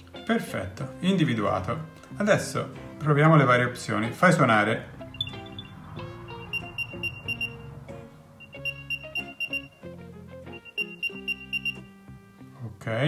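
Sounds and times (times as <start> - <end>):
guitar music: 3.9 - 12.6
quick high beeps: 5.2 - 7.7, 8.4 - 9.9, 10.5 - 11.9.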